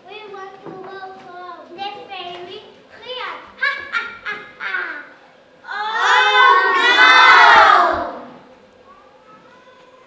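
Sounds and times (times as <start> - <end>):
children shouting together: 4.8 - 10.0.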